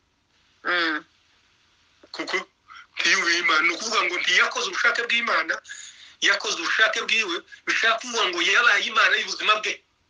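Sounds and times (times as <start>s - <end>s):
man speaking: 2.1s - 9.8s.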